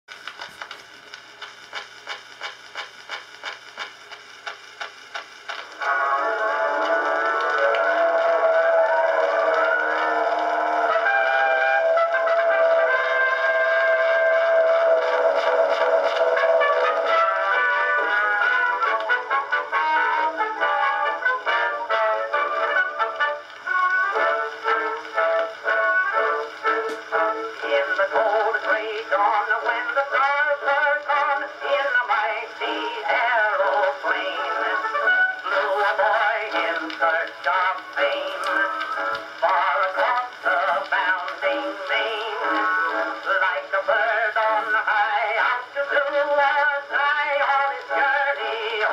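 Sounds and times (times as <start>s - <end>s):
record surface noise ticking: 0.1s - 48.9s
man singing: 5.8s - 23.0s, 24.2s - 48.9s.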